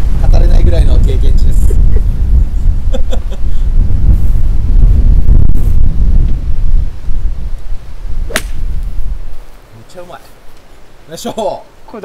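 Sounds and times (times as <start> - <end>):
wind rumble on microphone: 0.0 - 9.6
golf club striking ball: 8.3 - 8.9.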